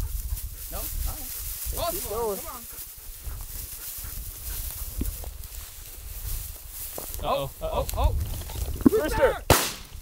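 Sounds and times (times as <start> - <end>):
footsteps through dry grass: 0.0 - 8.8
wind rumbling on microphone: 0.0 - 10.0.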